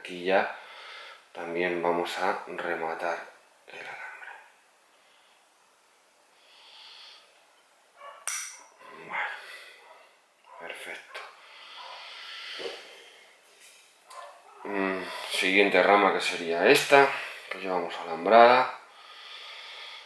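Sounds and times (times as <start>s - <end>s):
soft breaths: 3.8s - 7.6s, 8.8s - 15.6s, 18.8s - 20.0s.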